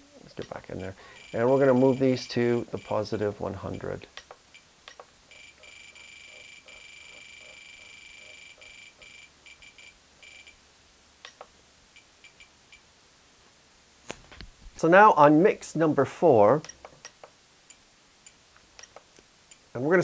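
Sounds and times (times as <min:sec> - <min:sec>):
radio transmitter beeping: 0:01.1 - 0:03.1.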